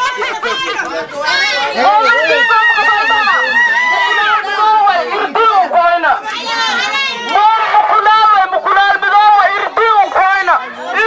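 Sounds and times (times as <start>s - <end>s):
voices chattering: 0.0s - 11.0s
woman talking through megaphone: 0.0s - 11.0s.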